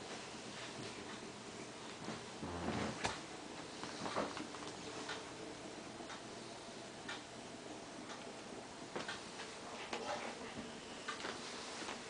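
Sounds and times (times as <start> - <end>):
low room noise: 0.0 - 12.0
faint ticking: 6.0 - 9.5.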